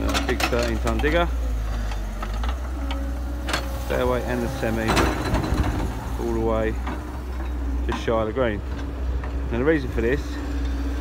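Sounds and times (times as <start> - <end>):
excavator engine rumbling: 0.0 - 11.0.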